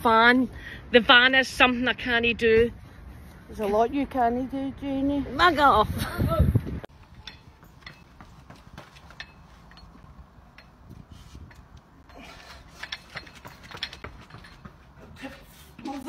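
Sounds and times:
footsteps on pavement: 6.9 - 9.9, 13.0 - 16.0.

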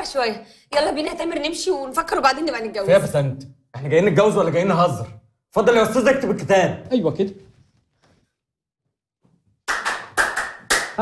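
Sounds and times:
sharp hand claps: 9.6 - 11.0.

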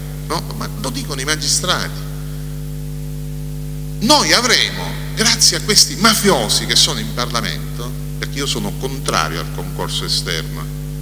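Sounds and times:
constant hiss: 0.0 - 11.0
low electrical hum: 0.0 - 11.0.

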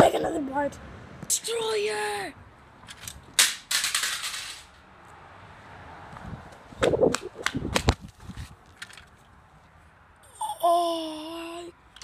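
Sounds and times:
toy car smashing onto asphalt: 3.0 - 4.8.

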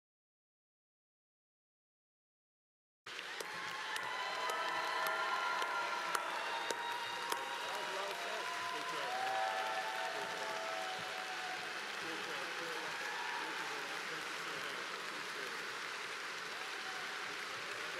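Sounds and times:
audience applauding: 3.1 - 17.9.

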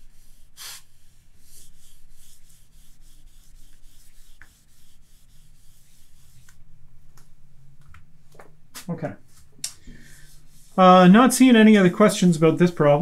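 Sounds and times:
rubbing strokes on glass: 0.0 - 6.6.

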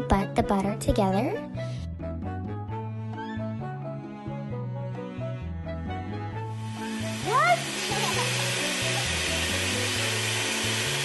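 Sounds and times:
background music: 0.0 - 11.0
electric hand mixer whirring: 6.4 - 11.0.

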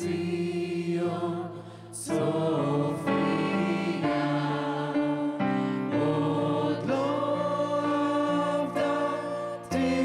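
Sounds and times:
choir singing held chords: 0.0 - 10.0.

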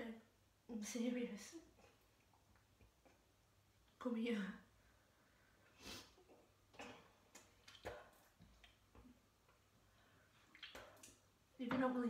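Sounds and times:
faint drips into toilet bowl: 6.8 - 11.3.

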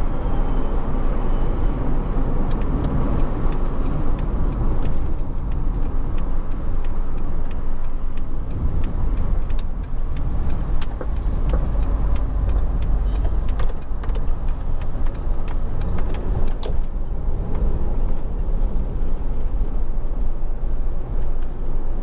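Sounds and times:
car interior road rumble: 0.0 - 22.0.

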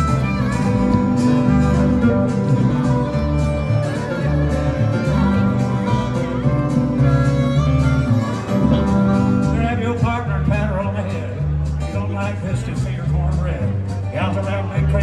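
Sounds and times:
acoustic guitars: 0.0 - 15.0
upright bass: 0.0 - 15.0.

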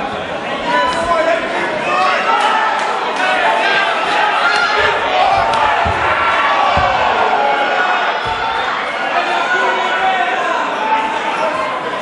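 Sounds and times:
crowd shouting and yelling: 0.0 - 12.0
dull thuds: 4.7 - 8.9.

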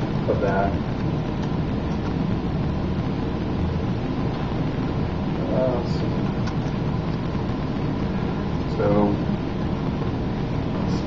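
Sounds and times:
room noise rumble and hiss: 0.0 - 11.0.

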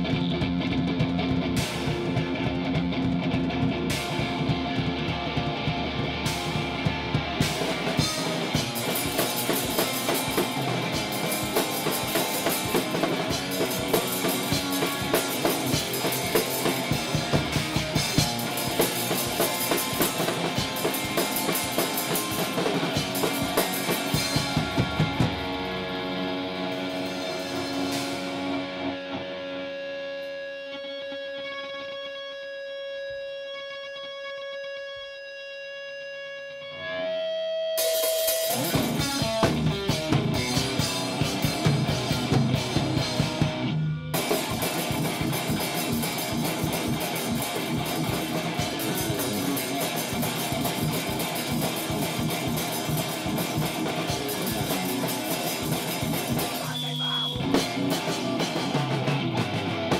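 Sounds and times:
loud rock guitar and drums: 0.0 - 59.9.

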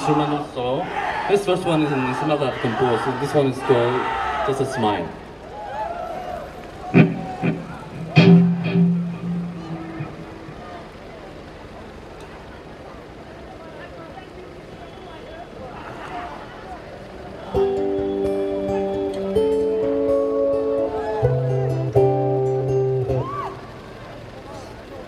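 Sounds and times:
faint voices: 0.0 - 22.1, 23.1 - 25.0
solo instrument notes ringing: 7.0 - 11.1, 17.5 - 23.2.

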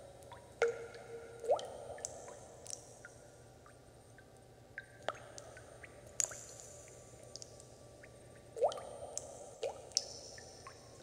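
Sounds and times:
water drops plinking: 0.6 - 2.8.

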